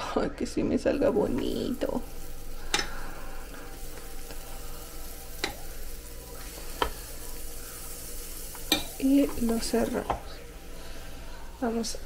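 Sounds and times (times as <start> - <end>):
batter sizzling on a hot plate: 0.7 - 12.0.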